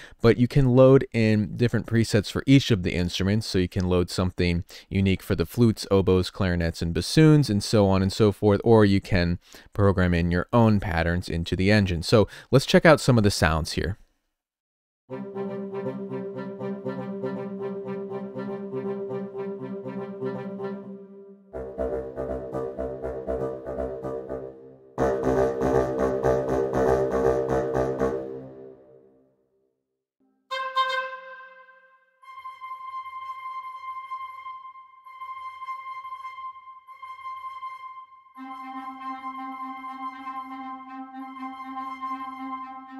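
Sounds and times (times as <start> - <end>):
higher held woodwind notes: 15.1 - 28.8, 30.5 - 42.9
woodwind ostinato: 15.1 - 28.8, 30.5 - 42.9.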